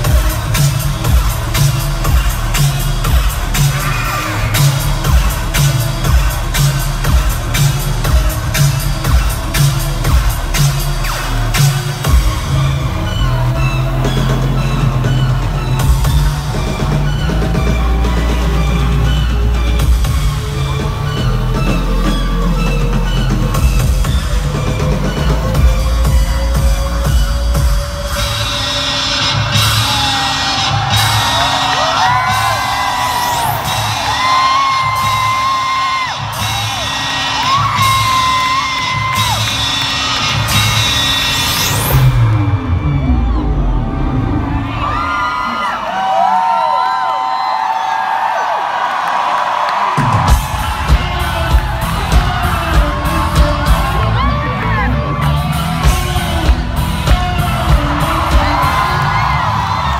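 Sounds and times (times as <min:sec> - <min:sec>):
fans whooping and screaming: 0:00.0 - 0:59.9
loud live concert music: 0:00.0 - 0:59.9.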